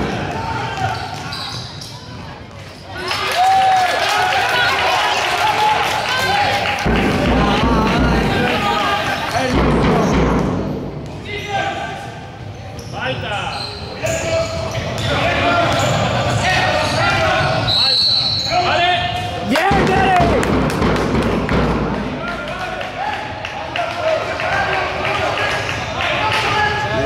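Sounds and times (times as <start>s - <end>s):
people shouting: 3.0s - 9.6s, 19.5s - 20.5s.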